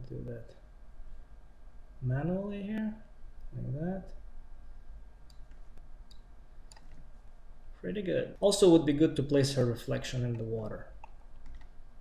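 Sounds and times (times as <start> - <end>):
low steady hum: 0.0 - 12.0
computer mouse clicks: 5.2 - 7.0, 10.3 - 11.8.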